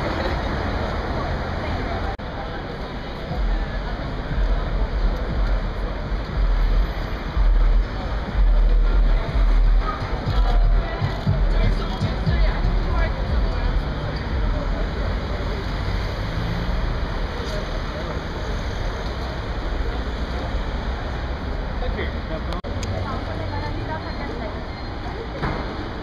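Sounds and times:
crowd voices: 0.0s - 26.0s
traffic: 0.0s - 26.0s.

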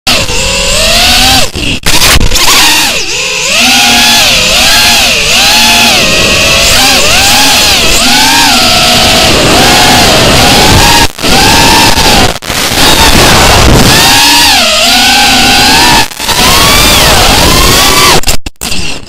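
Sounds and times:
drone motors whining: 0.1s - 19.0s
propeller and wind noise: 0.1s - 19.0s.

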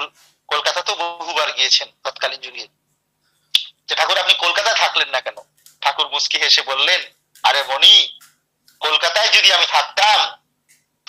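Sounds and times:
man speaking: 0.0s - 2.7s, 3.8s - 8.2s, 8.8s - 10.4s.

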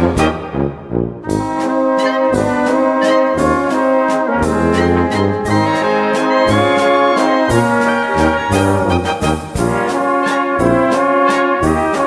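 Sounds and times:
brass band playing a waltz: 0.0s - 12.0s.

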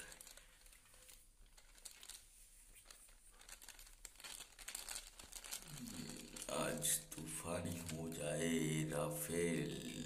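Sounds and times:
plastic snack packet crinkling: 0.0s - 10.0s.

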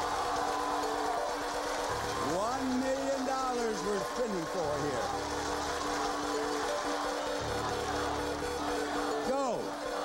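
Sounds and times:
audience cheering and shouting: 0.0s - 10.0s.

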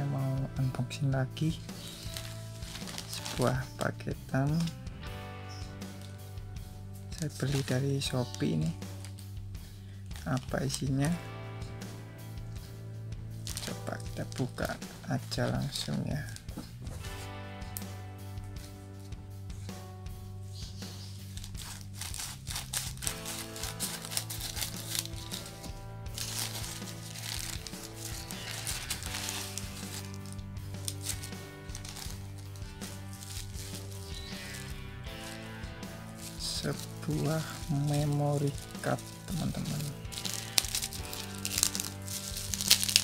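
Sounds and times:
background music with held tones: 0.0s - 43.0s
plastic mailer bag crinkling: 1.8s - 4.7s, 7.2s - 9.1s, 13.4s - 14.8s, 21.0s - 43.0s.

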